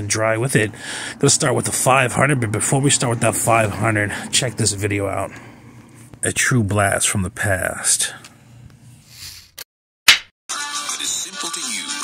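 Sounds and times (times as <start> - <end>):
background music: 10.5 - 12.0.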